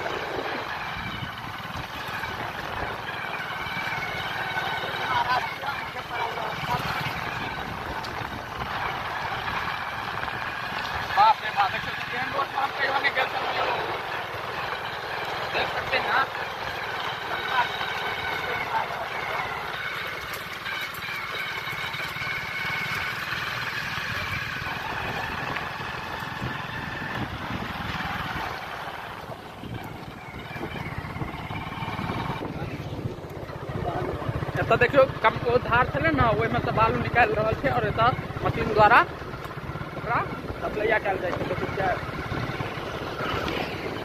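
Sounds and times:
motorcycle engine running: 0.0 - 44.0
voices: 0.0 - 44.0.

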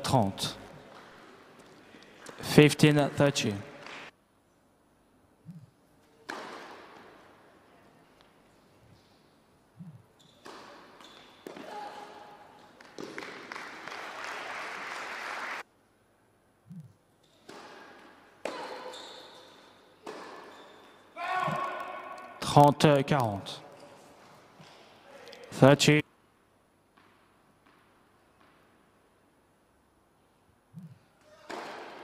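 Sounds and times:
tennis ball bouncing on court: 6.2 - 7.1, 9.8 - 11.7, 20.0 - 20.6, 26.9 - 28.7, 30.8 - 32.0
tennis ball strikes: 6.2 - 7.1, 31.5 - 32.0
spectator applause: 13.2 - 15.6.

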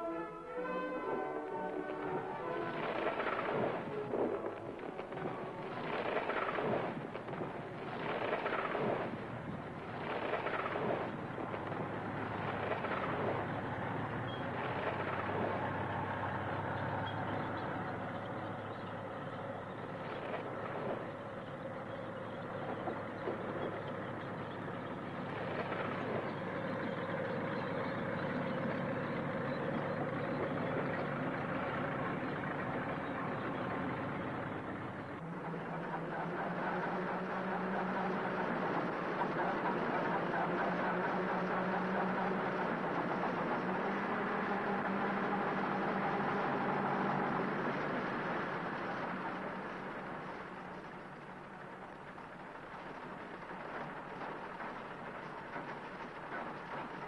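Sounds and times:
tractor engines droning: 0.0 - 57.0
rough crashing noises: 1.7 - 35.0.

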